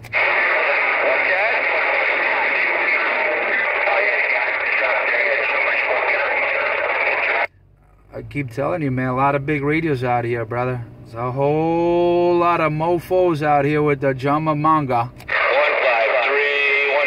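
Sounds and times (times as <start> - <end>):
loud radio static: 0.0 - 7.5, 15.3 - 17.0
faint garbled radio voices: 0.1 - 7.5, 15.3 - 17.0.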